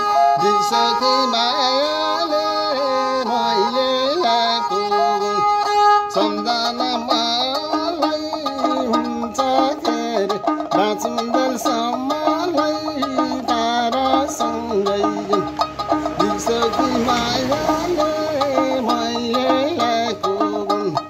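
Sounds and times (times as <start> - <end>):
bowed fiddle melody: 0.0 - 21.0.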